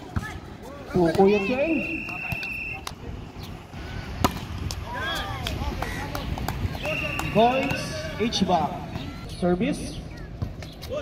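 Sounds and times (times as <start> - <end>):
distant voices of players: 0.0 - 11.0.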